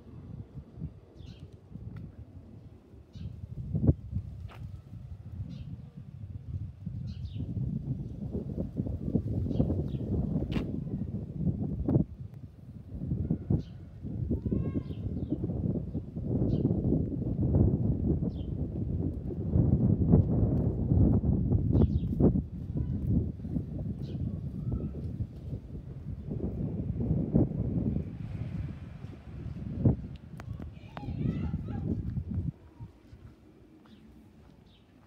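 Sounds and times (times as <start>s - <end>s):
wind rumbling on microphone: 0.0s - 35.0s.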